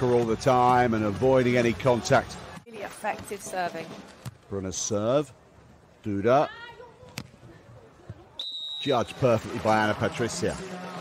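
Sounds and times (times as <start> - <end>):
referee's whistle blowing: 8.4 - 9.3.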